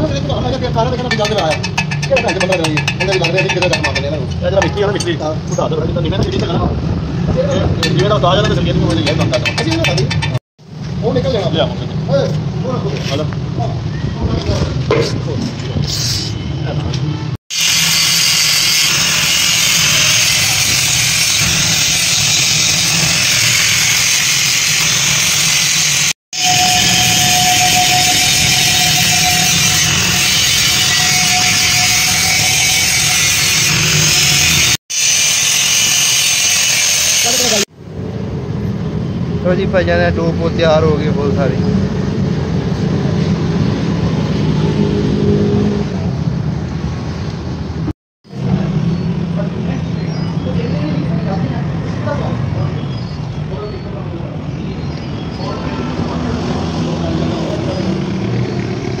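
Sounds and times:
angle grinder grinding metal: 0:17.5 - 0:37.7.

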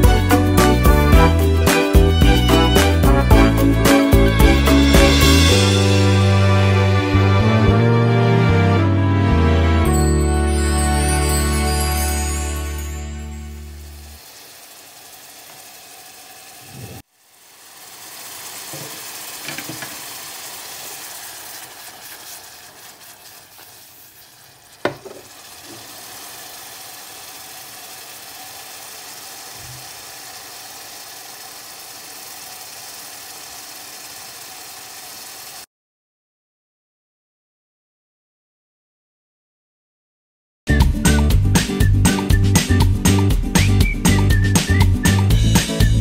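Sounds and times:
onions sizzling in oil: 0:13.9 - 0:35.6.

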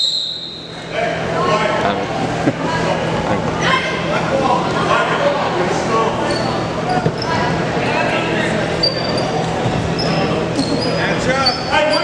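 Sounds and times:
crowd chatter: 0:00.5 - 0:12.0
sneakers squeaking on floor: 0:06.2 - 0:07.5, 0:08.8 - 0:12.0.

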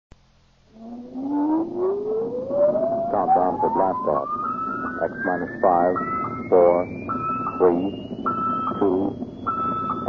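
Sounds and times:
echoing electronic drone: 0:00.5 - 0:10.0
rising electronic whine: 0:00.6 - 0:10.0.

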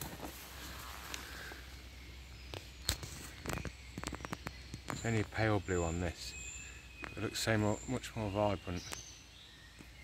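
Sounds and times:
footsteps through undergrowth: 0:00.0 - 0:01.6.

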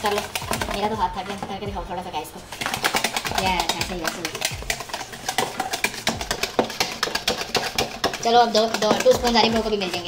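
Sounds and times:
whisk clicking against bowl: 0:00.0 - 0:01.5, 0:02.5 - 0:10.0.

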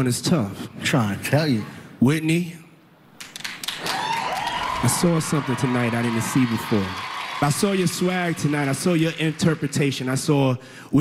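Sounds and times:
audience clapping and cheering: 0:03.2 - 0:10.6.

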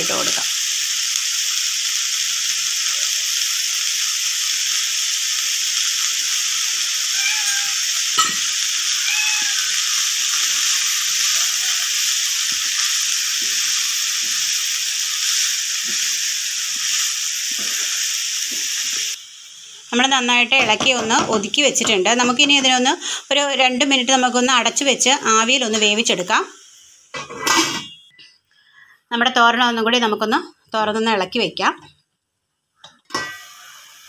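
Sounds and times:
vegetables sizzling in a pan: 0:00.0 - 0:32.0, 0:32.6 - 0:34.0.

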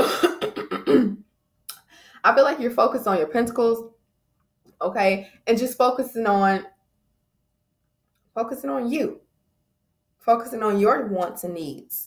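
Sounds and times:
woman coughing: 0:00.0 - 0:01.2.

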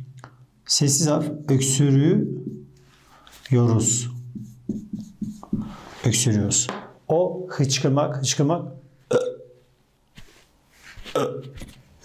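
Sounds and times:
marker squeaking on whiteboard: 0:04.0 - 0:05.8.

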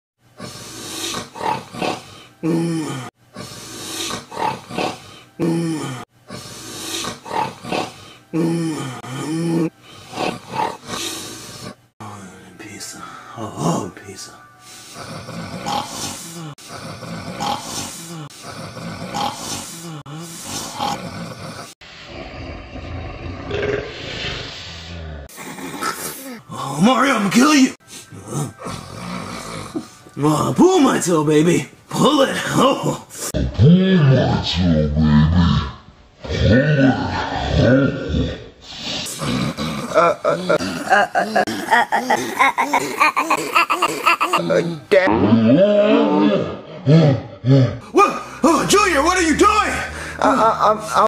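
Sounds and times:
man grunting and groaning: 0:02.4 - 0:03.1, 0:05.4 - 0:06.1, 0:08.3 - 0:09.8, 0:15.1 - 0:21.8, 0:25.7 - 0:29.2, 0:32.3 - 0:38.5, 0:39.1 - 0:51.0
harsh breathy growl: 0:14.9 - 0:26.9, 0:34.4 - 0:43.0, 0:45.2 - 0:51.0.

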